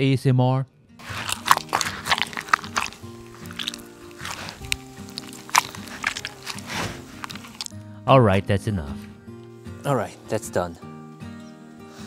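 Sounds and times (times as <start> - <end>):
background music with held notes: 0.2 - 12.0
tomatoes squelching and crunching: 1.0 - 7.8.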